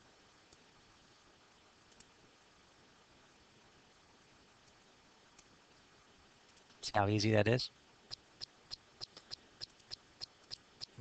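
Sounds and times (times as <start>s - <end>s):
computer mouse clicking: 1.9s - 2.1s, 8.1s - 11.0s.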